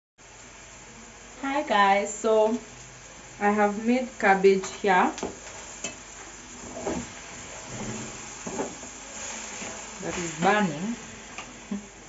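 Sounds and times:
faint steady background noise: 0:00.2 - 0:12.0
woman speaking: 0:01.4 - 0:02.6, 0:03.4 - 0:05.2, 0:10.0 - 0:11.0.

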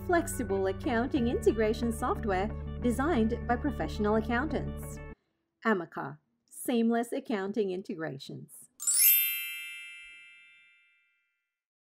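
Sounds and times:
bell-like electronic chime: 0:08.8 - 0:11.3.

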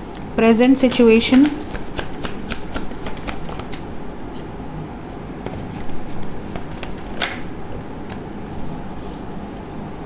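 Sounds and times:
cards being shuffled: 0:01.2 - 0:03.8, 0:05.4 - 0:07.4.

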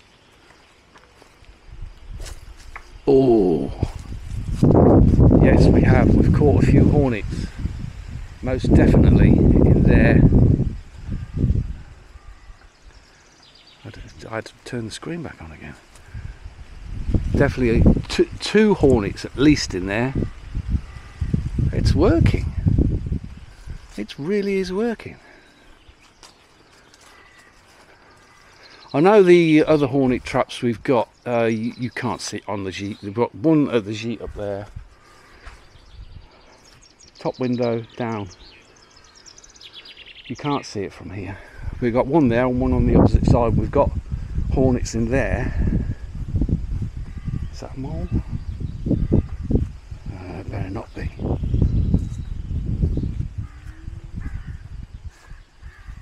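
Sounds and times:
faint outdoor background: 0:00.0 - 0:56.0
faint bird chirps: 0:10.8 - 0:14.4, 0:20.1 - 0:21.6, 0:23.4 - 0:29.5, 0:46.9 - 0:56.0.

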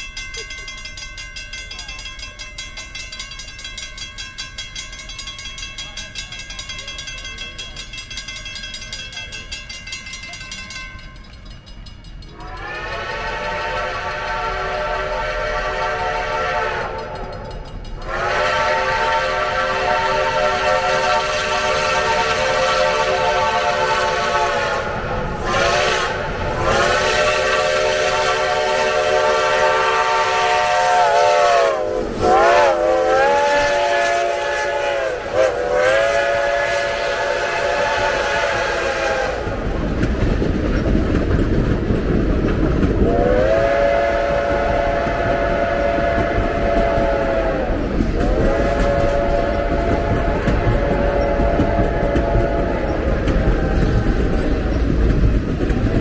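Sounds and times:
train rumbling past: 0:00.0 - 0:56.0
steam whistle blowing: 0:12.3 - 0:17.4, 0:18.0 - 0:39.5, 0:43.0 - 0:54.4.

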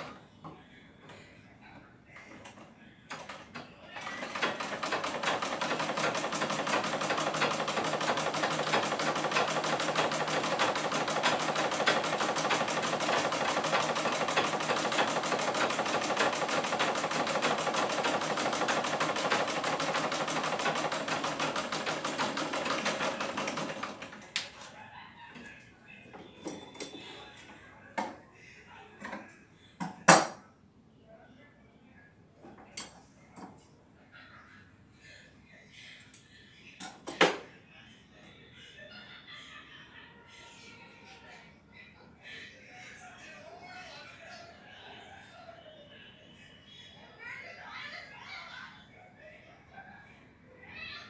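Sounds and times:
sewing machine stitching: 0:04.0 - 0:24.4.

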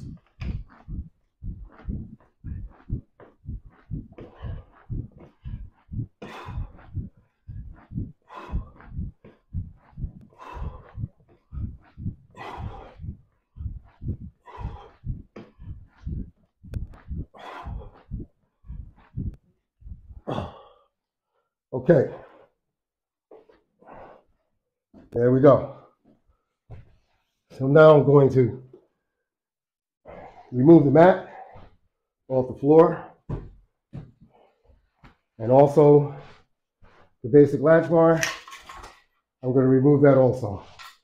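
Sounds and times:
soft low thumps: 0:00.0 - 0:20.6, 0:33.0 - 0:34.4.

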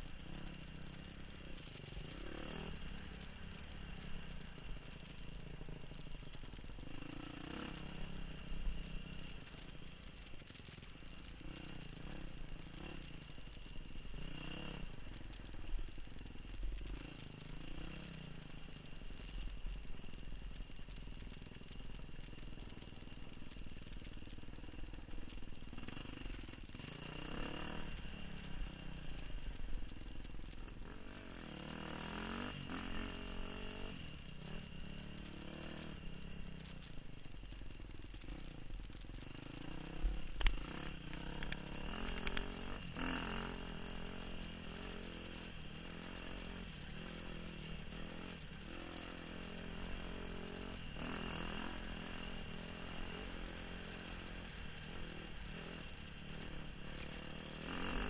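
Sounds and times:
dirt bike engine revving: 0:00.0 - 0:20.7, 0:21.4 - 0:58.0.

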